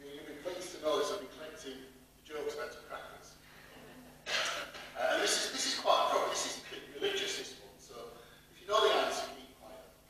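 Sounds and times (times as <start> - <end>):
man preaching into microphone: 5.0 - 9.7.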